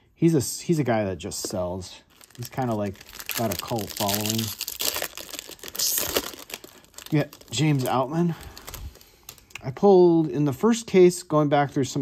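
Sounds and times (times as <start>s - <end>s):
foil wrapper crinkling and tearing: 2.1s - 9.6s.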